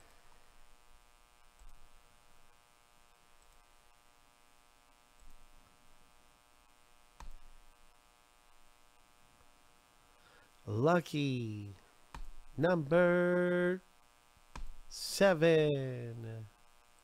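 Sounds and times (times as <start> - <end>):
faint electrical hum: 0.0 - 17.0.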